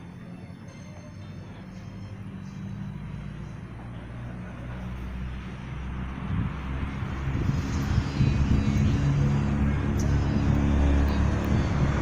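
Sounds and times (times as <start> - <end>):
motor vehicle engine rumble: 0.0 - 12.0.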